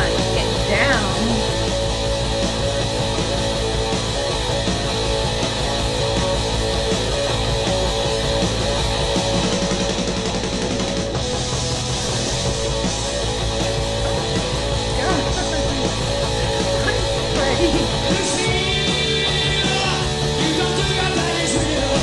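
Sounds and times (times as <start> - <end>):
live rock band playing: 1.4 - 22.0.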